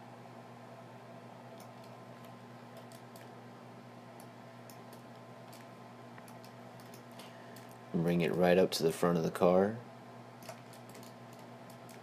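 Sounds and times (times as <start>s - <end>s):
steady low hum: 0.0s - 12.0s
computer mouse and keyboard clicks: 1.6s - 3.3s, 4.2s - 7.8s, 10.4s - 12.0s.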